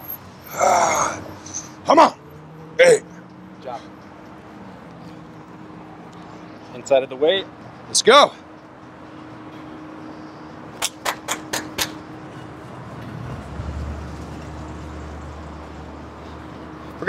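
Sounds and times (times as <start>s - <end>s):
city street traffic: 0.0s - 17.0s
sharp clicks: 10.8s - 12.0s.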